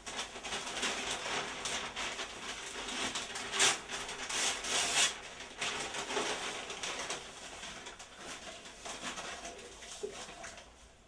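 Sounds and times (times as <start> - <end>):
newspaper rustling and crinkling: 0.0 - 11.0.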